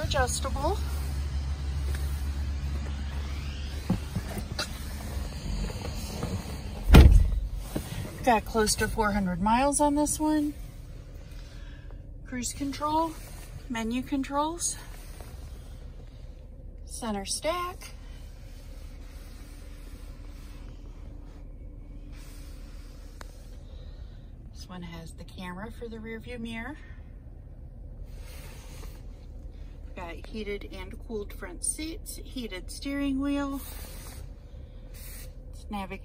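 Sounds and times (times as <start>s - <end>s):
car cabin rumble: 0.0s - 33.6s
loud thump: 6.8s - 7.5s.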